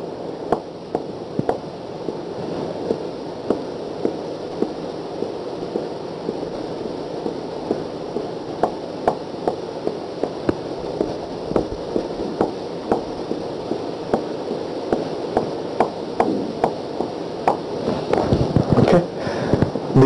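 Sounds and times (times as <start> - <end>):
steady hiss: 0.0 - 20.0
marker tapping on whiteboard: 0.5 - 1.6, 8.6 - 13.1, 14.9 - 17.6.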